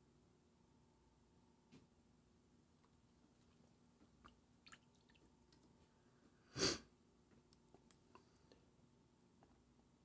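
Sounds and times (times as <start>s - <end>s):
person sniffing: 6.4s - 6.9s.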